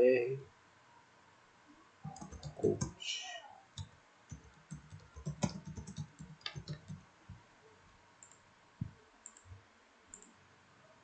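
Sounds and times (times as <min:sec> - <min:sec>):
computer mouse clicks: 0:02.1 - 0:03.0, 0:03.8 - 0:07.0, 0:08.2 - 0:10.4.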